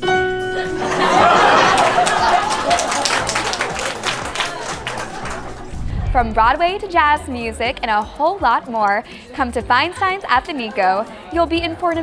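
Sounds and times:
music: 0.0 - 12.0
audience applause: 0.8 - 6.0.

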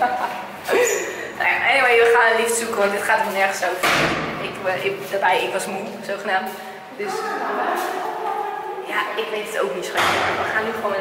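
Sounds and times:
woman's voice echoing: 0.0 - 11.0.

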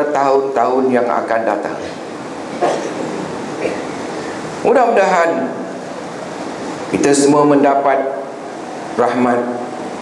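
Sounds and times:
hiss-like room noise: 0.0 - 10.0.

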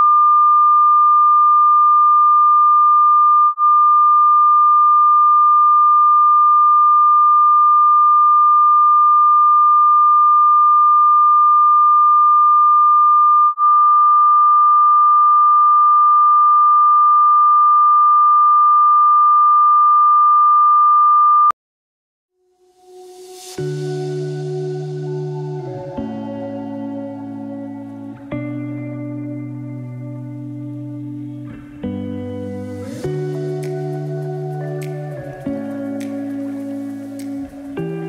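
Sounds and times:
sine test tone: 0.0 - 21.5.

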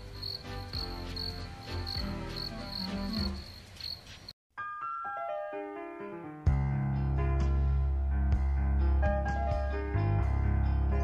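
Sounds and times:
soft music with low notes: 0.0 - 3.5, 4.6 - 11.0
crickets chirping: 0.0 - 4.3.

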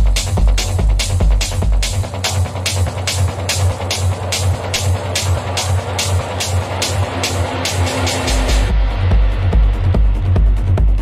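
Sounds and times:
deep bass: 0.0 - 11.0
techno music with driving beat: 0.0 - 11.0.

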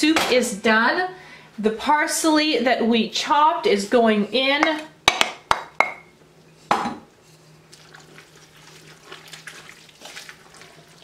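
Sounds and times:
stirring soup in pot: 7.2 - 11.0.

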